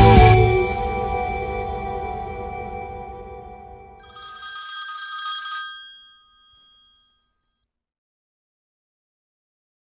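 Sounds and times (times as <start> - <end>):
bright bell-like chime: 4.0 - 7.4.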